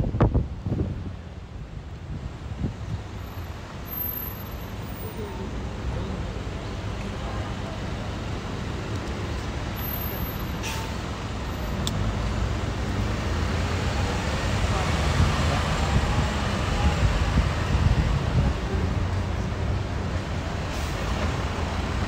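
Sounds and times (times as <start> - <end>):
street traffic rumble: 0.0 - 22.0.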